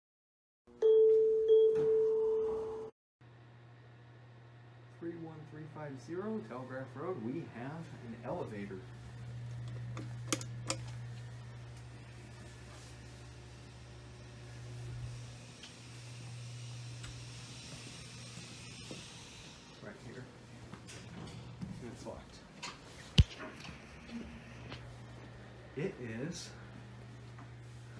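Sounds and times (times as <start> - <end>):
elevator arrival chime: 0.8 - 2.9.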